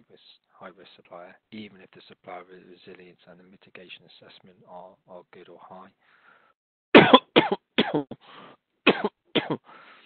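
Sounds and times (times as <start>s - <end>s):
man speaking: 0.0s - 6.0s
man coughing: 7.0s - 8.2s, 8.9s - 9.6s.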